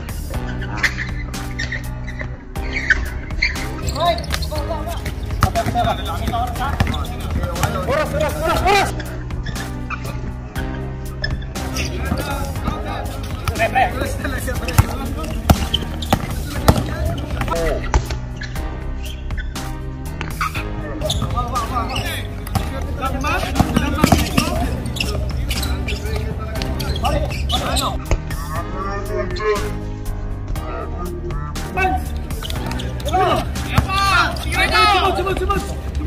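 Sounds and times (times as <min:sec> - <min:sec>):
background music: 0:00.0 - 0:36.0
players shouting: 0:03.6 - 0:09.0, 0:21.0 - 0:28.1, 0:31.7 - 0:36.0
basketball bouncing on hard court: 0:05.3 - 0:07.8, 0:14.7 - 0:18.0, 0:23.4 - 0:25.1.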